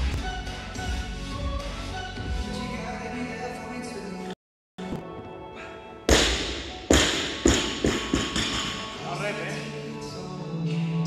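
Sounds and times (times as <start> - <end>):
barbell thudding on floor: 6.1 - 8.9.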